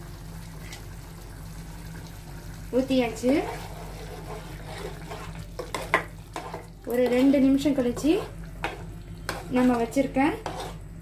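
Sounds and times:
spoon stirring thick curry: 3.1s - 10.8s
spoon scraping metal pot: 3.2s - 10.9s.

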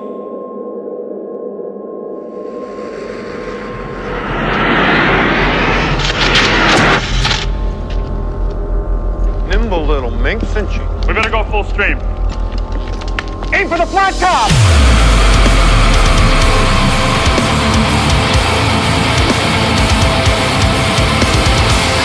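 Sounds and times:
rushing noise swell: 2.2s - 9.2s, 13.9s - 19.7s
steady low rumble: 2.4s - 19.9s
voices: 9.5s - 12.1s, 13.5s - 14.5s.

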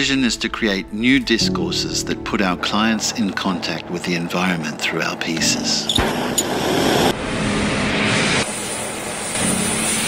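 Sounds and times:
gas torch flame rushing: 6.0s - 10.0s.

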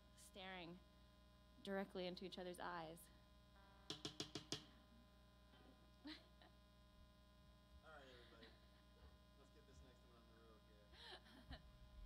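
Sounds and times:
amplifier electrical hum: 0.0s - 12.0s.

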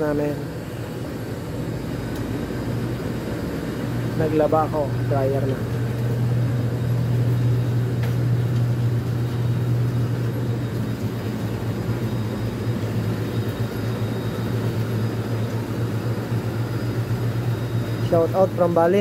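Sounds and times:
laundry machines humming: 0.0s - 19.0s.

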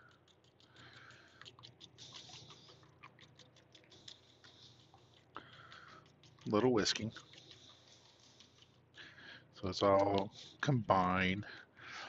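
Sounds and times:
fork whisking eggs in a bowl: 0.0s - 8.9s.

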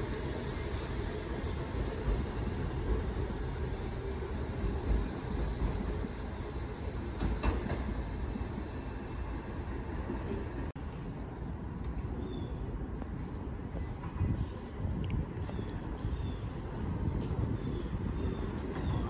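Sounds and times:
subway train rumbling on track: 0.0s - 19.0s.

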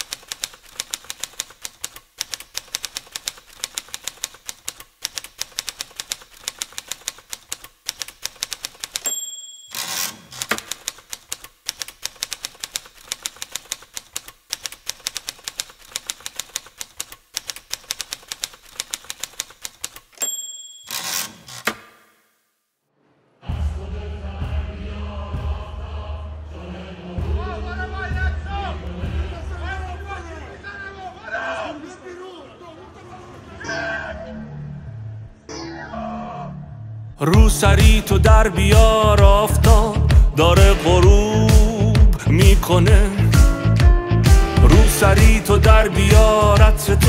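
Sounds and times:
typewriter keys clacking: 0.0s - 21.8s
typewriter carriage return: 0.0s - 21.9s
typewriter margin bell ding: 9.0s - 10.6s, 20.2s - 21.6s.

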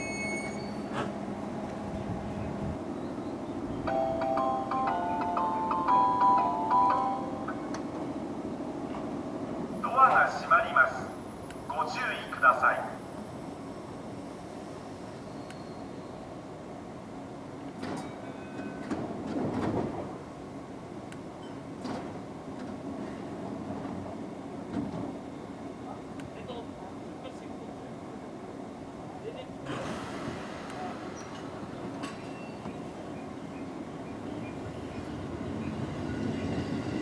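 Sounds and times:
electric train humming: 0.0s - 29.6s, 30.2s - 37.0s
sliding doors shutting: 21.5s - 22.8s, 29.6s - 32.8s.

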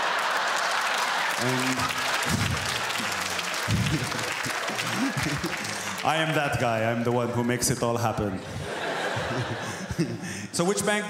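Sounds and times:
audience laughing: 0.0s - 6.3s, 8.2s - 10.5s
audience applauding: 0.0s - 7.6s.

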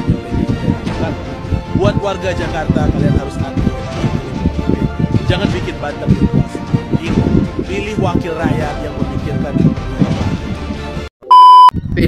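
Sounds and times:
background music: 0.0s - 12.0s
high electronic beep: 11.2s - 11.7s.

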